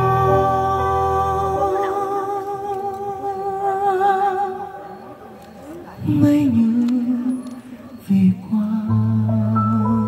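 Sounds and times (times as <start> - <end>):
man singing long note: 0.0 - 4.5.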